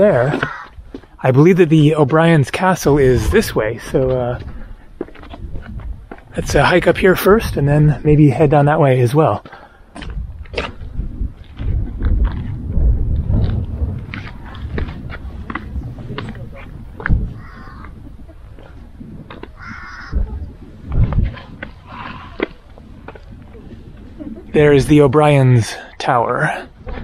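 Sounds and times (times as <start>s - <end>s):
wind buffeting microphone: 0.0s - 27.0s
footsteps on stone path: 0.1s - 2.4s, 3.9s - 6.9s, 9.3s - 24.2s.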